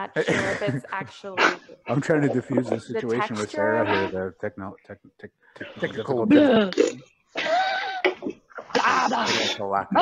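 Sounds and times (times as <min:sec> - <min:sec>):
person talking: 0:00.0 - 0:04.9, 0:05.6 - 0:07.0, 0:08.2 - 0:10.0
person coughing: 0:08.8 - 0:09.6.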